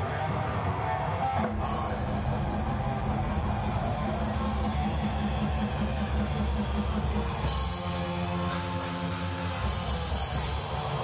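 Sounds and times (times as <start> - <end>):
heavy metal band playing: 1.2 - 11.0.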